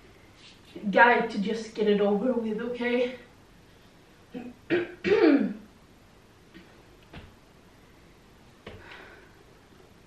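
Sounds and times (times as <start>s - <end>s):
woman clearing her throat: 4.4s - 5.6s.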